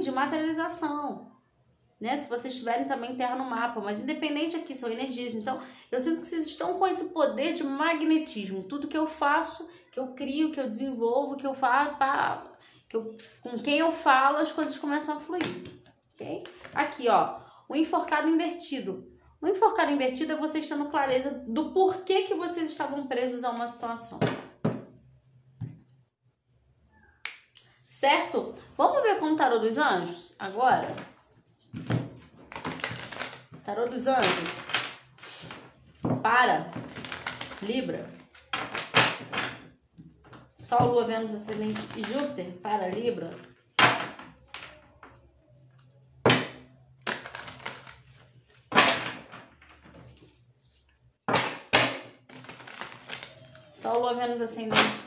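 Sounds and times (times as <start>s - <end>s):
cards being shuffled: 31.8s - 33.7s, 36.8s - 38.8s, 41.5s - 42.4s, 47.0s - 51.0s, 52.2s - 53.7s.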